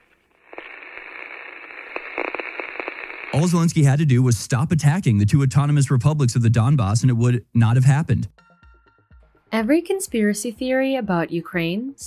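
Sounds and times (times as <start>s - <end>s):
crackles and clicks: 0.0s - 4.6s
radio static hiss: 0.0s - 8.2s.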